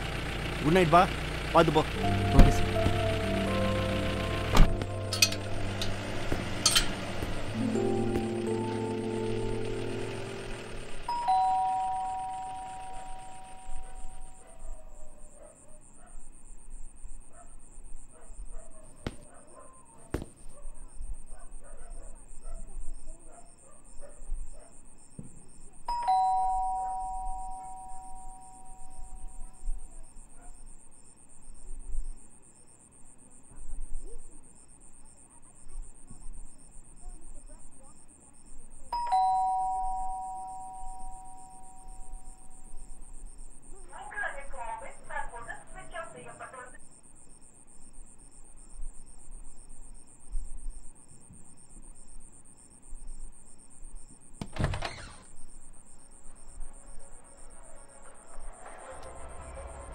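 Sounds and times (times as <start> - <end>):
electronic two-tone doorbell chime: 2.0 - 14.4, 25.9 - 29.6, 38.9 - 42.8.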